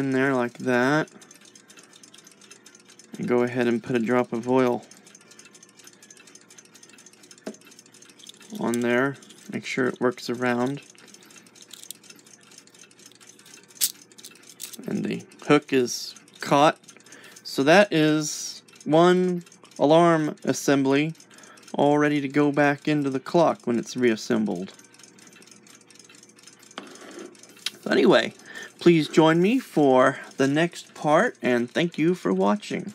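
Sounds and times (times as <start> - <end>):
faint metallic clock clicks: 0.0 - 32.9.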